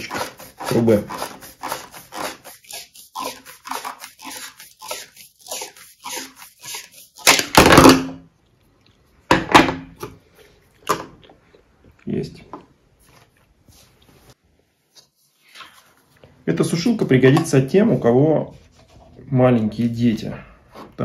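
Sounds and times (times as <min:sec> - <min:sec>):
pipe cutter rasping on plastic pipe: 0:00.0 - 0:07.6.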